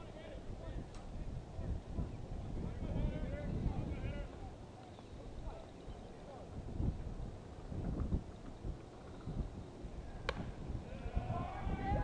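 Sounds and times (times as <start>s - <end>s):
wind rumble on microphone: 0.0s - 12.0s
bat hitting ball crack: 10.2s - 10.6s.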